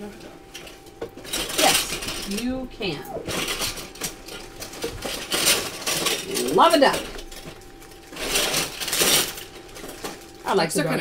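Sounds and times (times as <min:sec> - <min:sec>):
plastic bag crinkling: 0:03.2 - 0:10.8.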